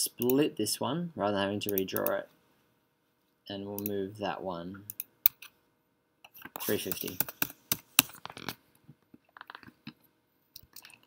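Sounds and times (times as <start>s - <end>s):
keyboard and mouse clicking: 6.4s - 8.5s.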